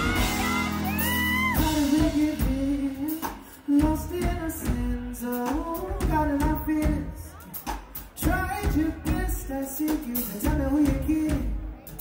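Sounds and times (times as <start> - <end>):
electric guitar: 0.0 - 3.6
bass guitar: 0.0 - 12.0
drums: 0.0 - 12.0
person singing lead vocals: 0.0 - 12.0.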